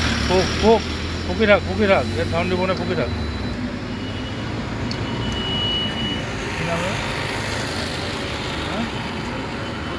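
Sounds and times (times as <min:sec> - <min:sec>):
roadside vehicle noise: 0:00.0 - 0:09.9.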